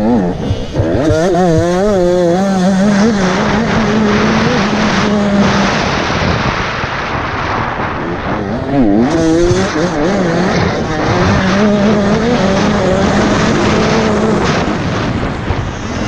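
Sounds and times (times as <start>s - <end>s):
dirt bike engine revving: 0.0s - 16.0s
steady rushing noise: 0.0s - 16.0s.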